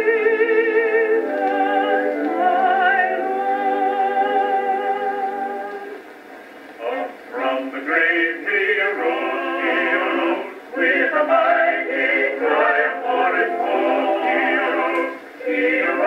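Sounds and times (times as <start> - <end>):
vocal quartet singing a hymn: 0.0 - 6.0, 6.7 - 16.0.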